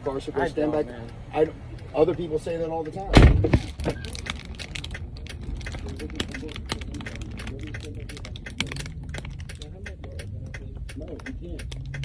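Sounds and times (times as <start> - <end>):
light clicks and ticks: 0.0 - 3.1, 3.9 - 12.0
muffled voices: 5.5 - 11.8.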